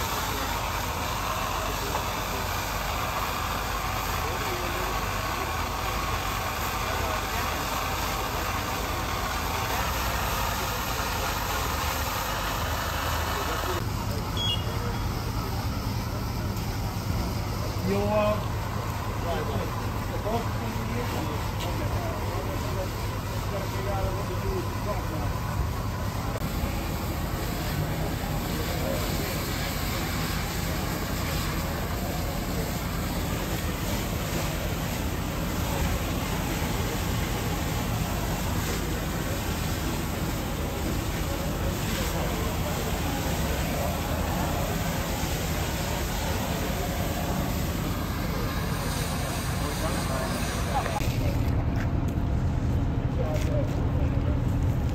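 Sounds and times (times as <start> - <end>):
engine idling: 0.0 - 54.9
fire hose stream spraying: 0.0 - 54.9
outdoor noise: 0.0 - 54.9.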